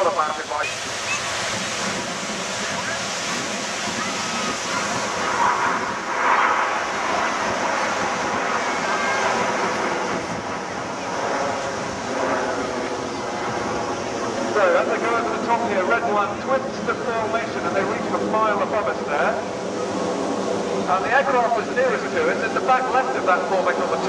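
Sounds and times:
jets roaring overhead: 0:00.0 - 0:24.0
wind on microphone: 0:00.0 - 0:24.0.

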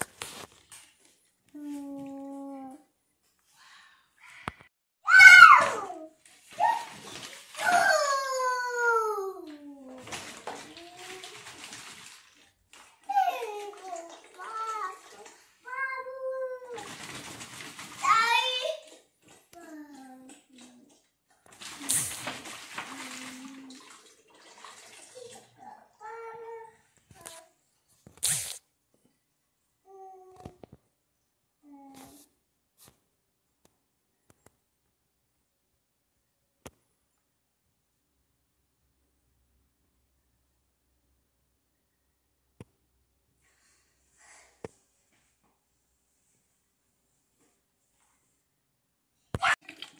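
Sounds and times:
children crying out: 0:05.1 - 0:06.0
water swishing in bottles: 0:05.1 - 0:28.6, 0:49.4 - 0:49.9.

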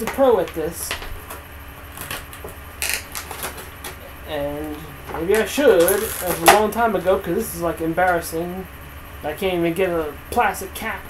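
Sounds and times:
plastic packaging crackling: 0:01.9 - 0:04.0, 0:05.4 - 0:06.6.

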